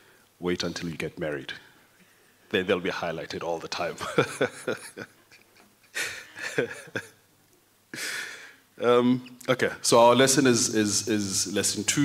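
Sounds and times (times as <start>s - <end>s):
man laughing: 4.0s - 7.2s.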